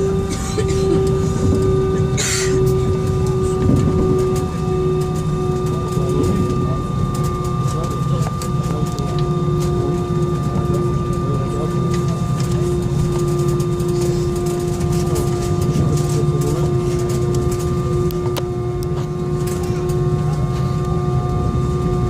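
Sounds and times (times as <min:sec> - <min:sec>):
jet engines rumbling and whining: 0:00.0 - 0:22.0.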